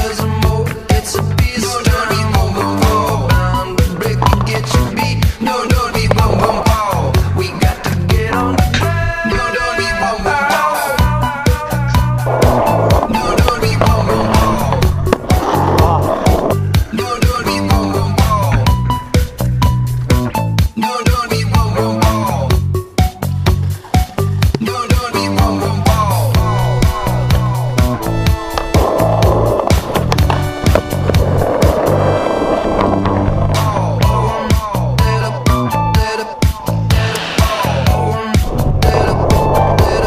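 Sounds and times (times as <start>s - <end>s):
skateboard wheels rolling on concrete: 0.0s - 40.0s
background music with steady beat: 10.4s - 31.8s, 33.5s - 40.0s
electronic dance music: 24.7s - 30.8s.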